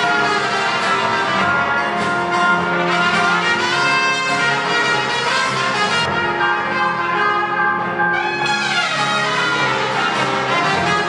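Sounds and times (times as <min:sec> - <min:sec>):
small band playing: 0:00.0 - 0:11.0
trumpet melody: 0:00.0 - 0:11.0.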